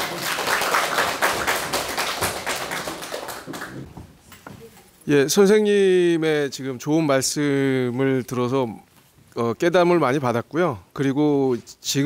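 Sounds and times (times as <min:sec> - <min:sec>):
small audience clapping: 0:00.0 - 0:03.9.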